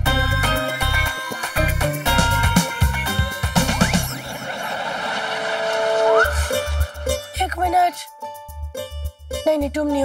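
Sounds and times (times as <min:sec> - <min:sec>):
steady held tone: 0:01.2 - 0:07.7
rising glide: 0:03.6 - 0:07.4.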